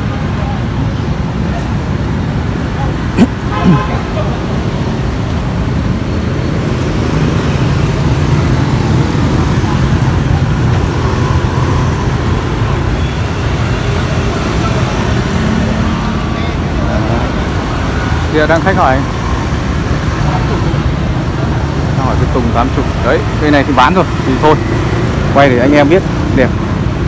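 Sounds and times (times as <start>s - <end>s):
street traffic rumble: 0.0s - 27.0s.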